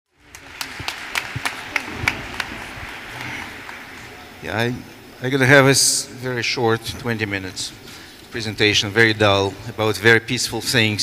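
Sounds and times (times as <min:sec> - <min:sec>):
audience applause: 0:00.1 - 0:05.0
sharp single claps: 0:00.3 - 0:04.2.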